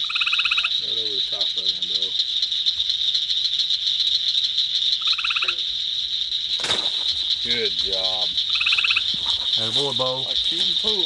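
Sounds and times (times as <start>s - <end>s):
crickets droning: 0.0s - 11.0s
pulsed insect call: 0.0s - 11.0s
grass rustling: 5.8s - 11.0s.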